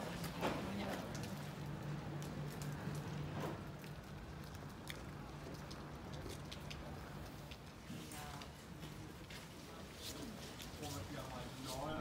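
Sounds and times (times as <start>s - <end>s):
light rain: 0.0s - 12.0s.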